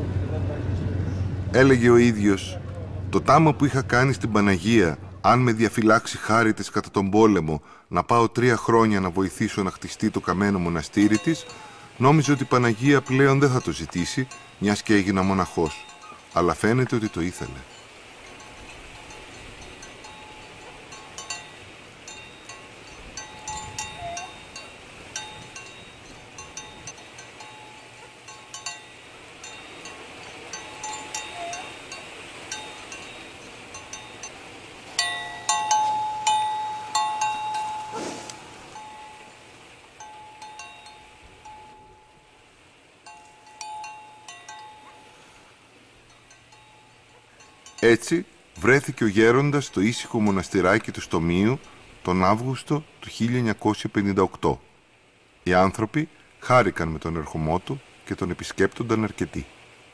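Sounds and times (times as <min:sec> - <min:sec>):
small metal bells tinkling: 0:10.4 - 0:42.4, 0:43.0 - 0:51.9.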